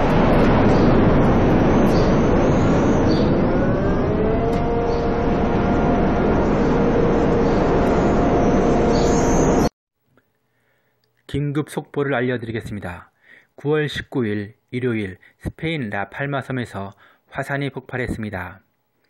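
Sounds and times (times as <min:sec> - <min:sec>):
volcano rumbling: 0:00.0 - 0:09.6
rising tone: 0:00.0 - 0:09.7.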